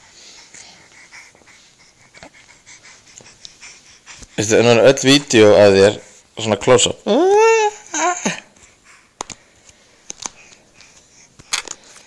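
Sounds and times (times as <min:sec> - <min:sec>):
baby breathing quickly: 0:00.0 - 0:04.8, 0:08.5 - 0:12.0.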